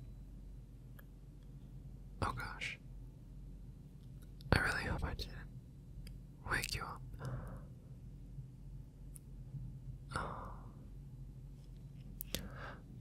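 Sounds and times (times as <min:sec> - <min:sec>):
man whispering: 0:02.2 - 0:02.8, 0:04.5 - 0:05.5, 0:06.4 - 0:07.2.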